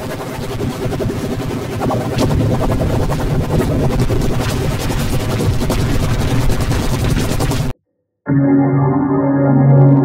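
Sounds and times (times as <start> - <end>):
distorted jingle music: 8.3 - 10.0.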